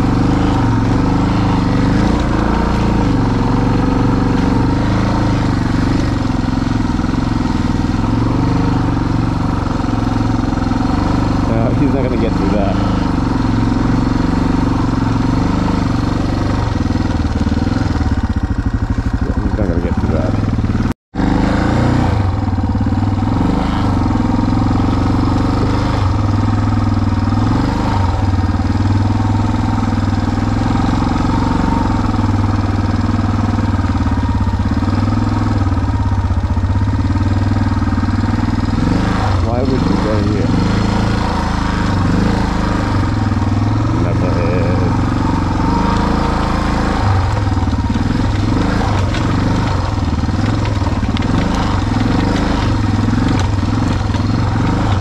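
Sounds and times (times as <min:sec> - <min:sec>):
vehicle engine revving: 0:00.0 - 0:55.0.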